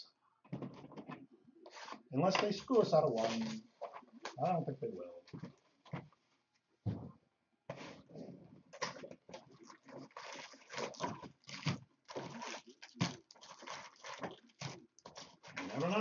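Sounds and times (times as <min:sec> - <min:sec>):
cardboard and foil crinkling: 0:02.8 - 0:04.4, 0:09.9 - 0:16.0.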